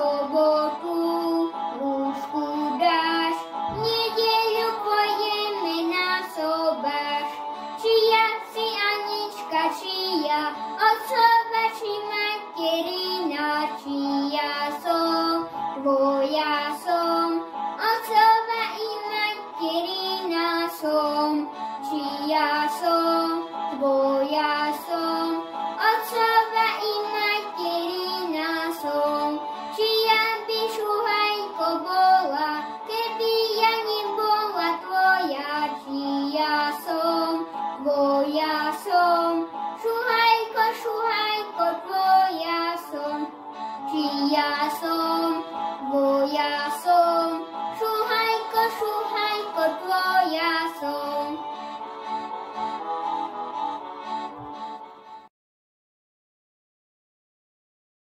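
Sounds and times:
boy singing: 0.0 - 43.3, 43.9 - 51.5.

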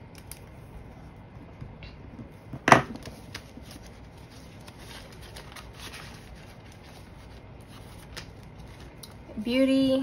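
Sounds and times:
banknotes rustling: 3.0 - 9.0.

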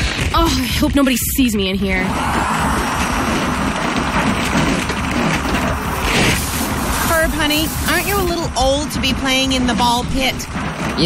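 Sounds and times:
suction machine rushing air: 2.0 - 11.0
plastic balls clattering: 2.1 - 11.0.

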